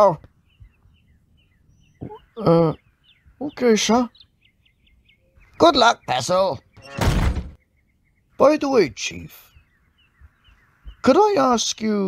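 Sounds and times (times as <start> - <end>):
faint high peeps: 1.8 - 2.8.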